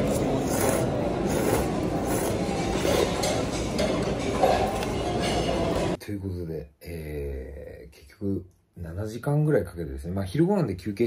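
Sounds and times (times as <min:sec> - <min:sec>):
person slurping noodles: 0:00.0 - 0:03.4.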